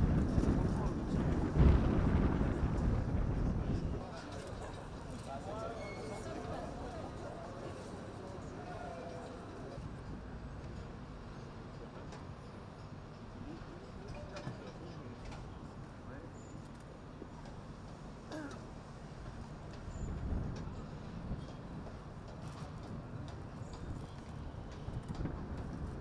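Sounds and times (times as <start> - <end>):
wind buffeting microphone: 0.0 - 4.2, 19.9 - 26.0
outdoor background noise: 0.0 - 26.0.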